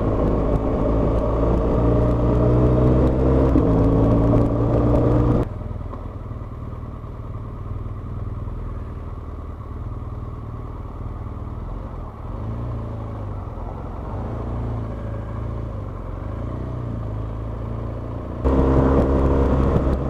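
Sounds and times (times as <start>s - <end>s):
motorcycle engine low rumble: 0.0s - 20.0s
wind: 0.0s - 20.0s.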